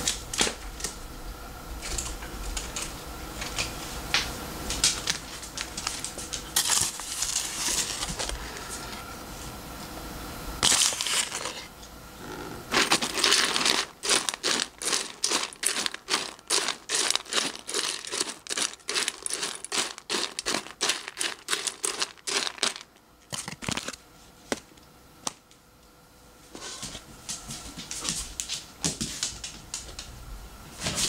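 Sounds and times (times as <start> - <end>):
dry kibble rattling in metal bowl: 5.0 - 8.3, 10.6 - 11.6, 12.7 - 23.9.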